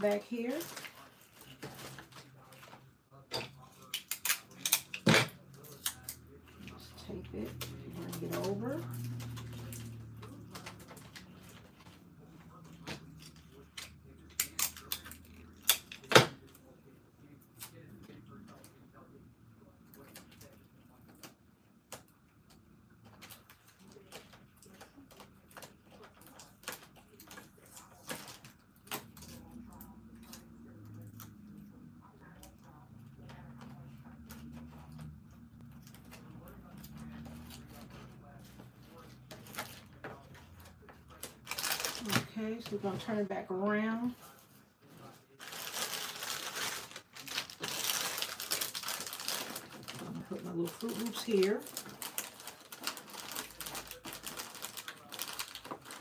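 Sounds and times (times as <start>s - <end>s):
plastic packaging crinkling: 0.0s - 6.1s, 35.8s - 43.3s, 45.0s - 56.0s.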